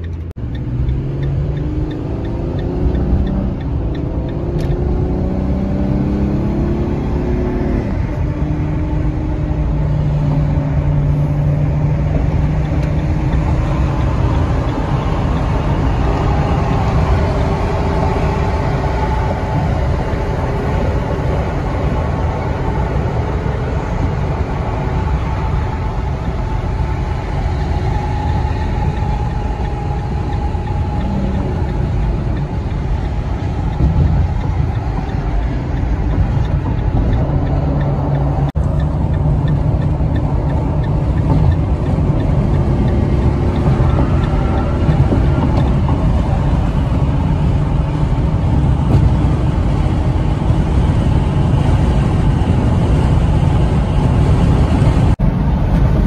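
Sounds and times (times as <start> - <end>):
low engine drone: 0.0 - 56.0
tyre and wind noise: 0.0 - 56.0.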